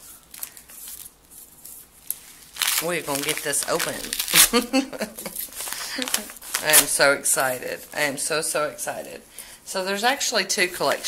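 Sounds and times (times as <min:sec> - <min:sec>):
paper envelope tearing: 0:02.5 - 0:04.7, 0:05.3 - 0:07.0.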